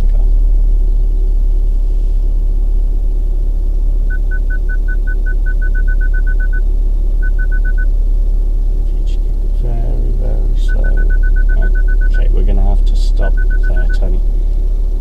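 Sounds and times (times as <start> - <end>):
low rumble of slow car: 0.0 - 15.0
parking sensor beeping: 4.1 - 7.9, 10.6 - 12.3, 13.2 - 14.1.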